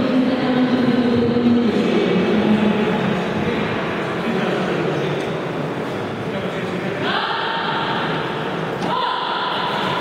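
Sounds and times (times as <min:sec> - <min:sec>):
echoing sports hall din: 0:00.0 - 0:10.0.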